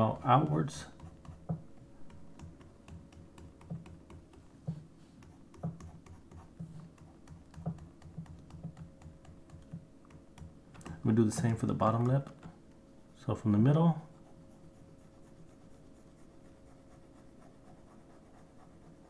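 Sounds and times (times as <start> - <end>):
faint steady hum: 0.0 - 19.0
stylus tapping on tablet: 0.4 - 12.5.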